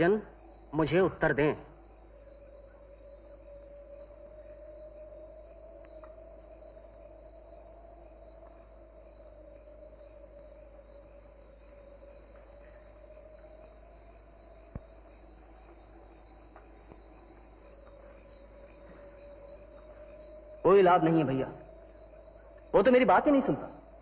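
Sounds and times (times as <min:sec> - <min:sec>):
crickets chirping: 0:00.0 - 0:24.0
low steady drone: 0:00.0 - 0:24.0.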